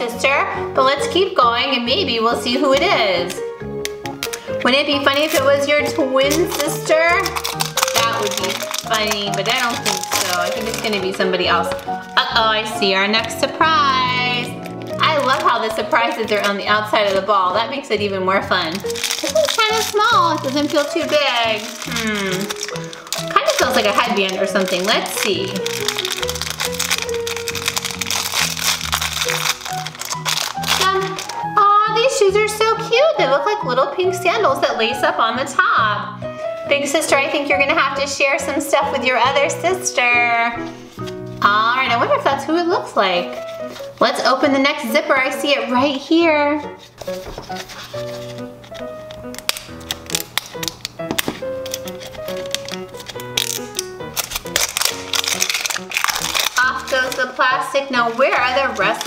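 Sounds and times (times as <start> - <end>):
background music: 0.0 - 59.0
plastic wrapper crinkling: 3.2 - 17.6, 18.4 - 32.2, 43.2 - 44.2, 46.6 - 59.0.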